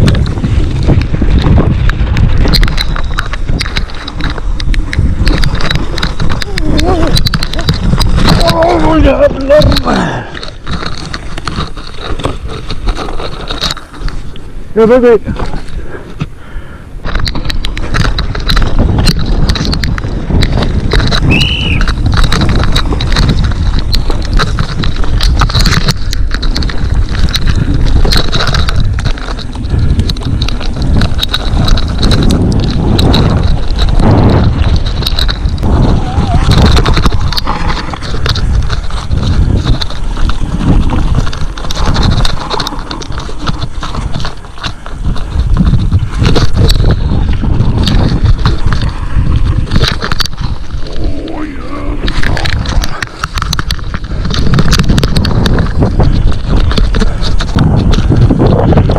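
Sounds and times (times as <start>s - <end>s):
mountain bike clattering and rattling: 0.0s - 16.4s, 17.0s - 58.9s
wind rumble on microphone: 0.0s - 58.9s.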